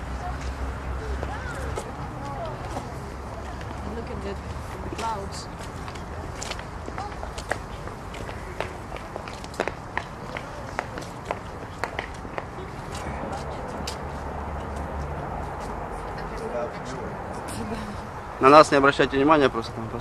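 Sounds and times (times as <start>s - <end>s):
footsteps on paved stone: 0.3s - 16.5s
low steady rumble: 17.5s - 20.0s.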